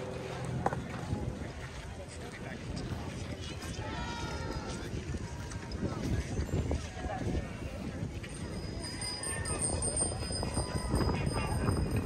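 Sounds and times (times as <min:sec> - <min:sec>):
footsteps on boardwalk: 0:00.0 - 0:12.0
low uneven rumble: 0:00.0 - 0:12.0.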